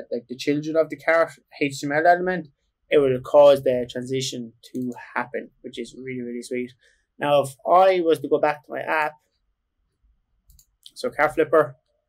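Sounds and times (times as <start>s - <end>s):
computer mouse clicks: 10.5s - 11.0s.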